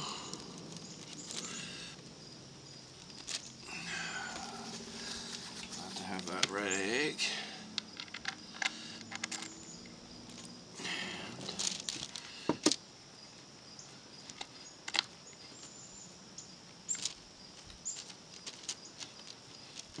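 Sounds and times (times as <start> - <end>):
low outdoor background: 0.0 - 20.0.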